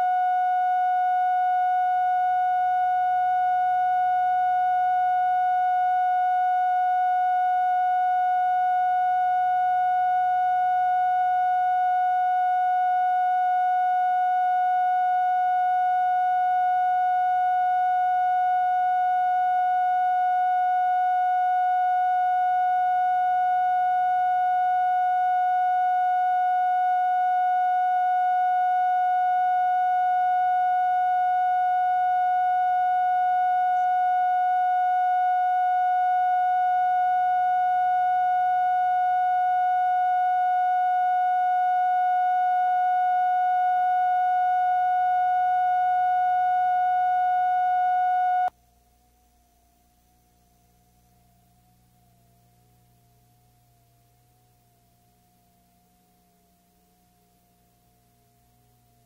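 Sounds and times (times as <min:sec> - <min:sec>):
electronic test tone: 0:00.0 - 0:48.5
faint tape hiss and hum: 0:00.0 - 0:59.0.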